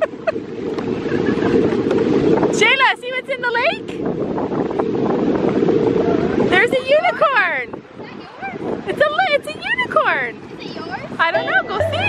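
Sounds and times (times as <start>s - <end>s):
wind buffeting microphone: 0.0s - 12.0s
high-pitched voice calling out: 11.3s - 12.0s.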